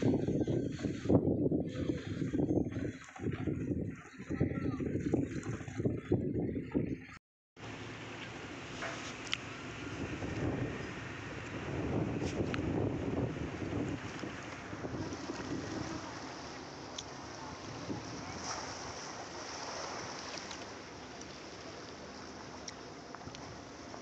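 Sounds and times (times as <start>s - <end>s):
wind buffeting microphone: 0.0s - 7.2s, 9.5s - 20.3s
small waves on sandy beach: 7.6s - 24.0s.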